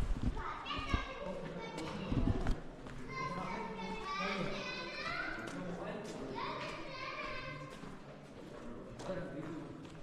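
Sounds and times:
children calling and chattering: 0.3s - 8.0s.

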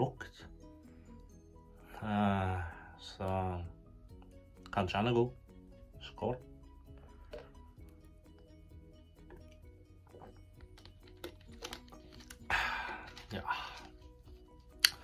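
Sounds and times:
soft background music: 0.0s - 15.0s
breathy noise: 12.3s - 14.0s.

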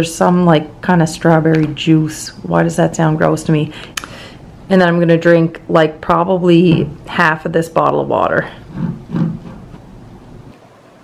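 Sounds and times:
woman's voice: 0.0s - 4.1s, 4.7s - 8.7s.

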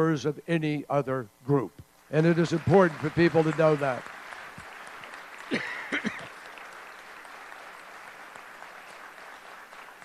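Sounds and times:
audience applauding: 2.2s - 10.0s.

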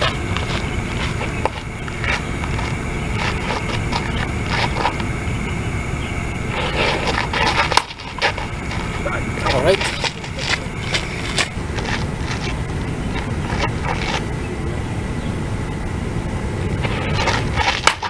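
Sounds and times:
scuffs on dirt: 0.0s - 5.2s, 6.5s - 14.4s
steady low rumble: 0.0s - 18.0s
baseball bat cracking ball: 17.2s - 18.0s.

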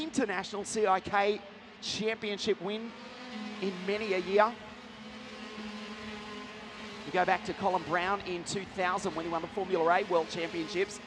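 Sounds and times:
kart engines droning: 0.0s - 11.0s.

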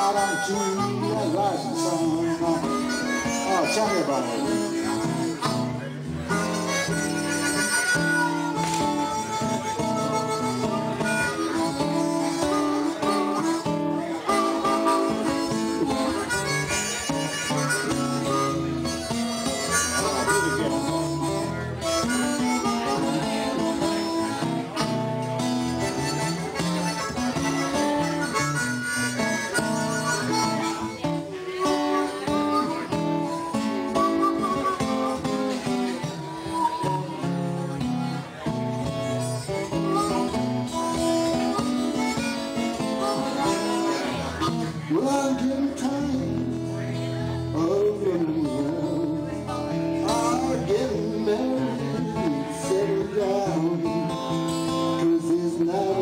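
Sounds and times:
acoustic guitar: 0.0s - 56.0s
blues harmonica: 0.0s - 56.0s.

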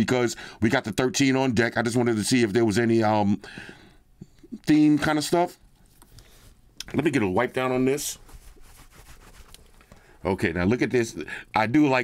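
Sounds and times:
cloth rubbing on smartphone: 7.2s - 10.5s.

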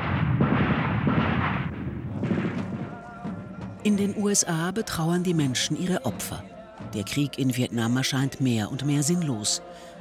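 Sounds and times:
gunfire and explosions: 0.0s - 4.0s.

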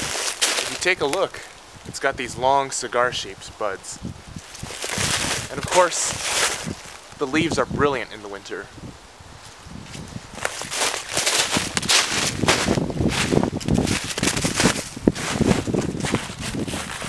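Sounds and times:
footsteps crunching snow and leaves: 0.0s - 1.6s, 4.4s - 7.4s, 9.3s - 17.0s.

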